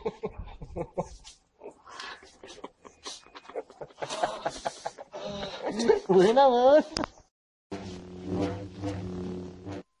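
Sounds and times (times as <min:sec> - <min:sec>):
steady low drone: 0:07.7 - 0:09.9
short swells of noise: 0:07.7 - 0:10.0.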